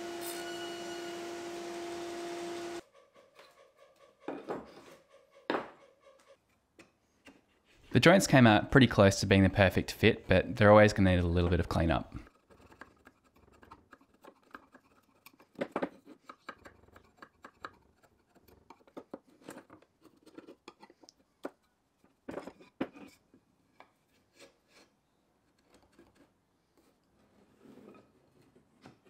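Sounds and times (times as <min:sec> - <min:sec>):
chisel scraping hardwood: 0:12.2 - 0:29.0.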